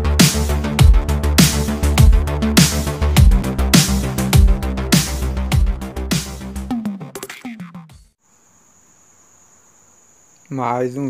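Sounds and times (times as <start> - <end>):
low hiss: 8.2 - 11.0.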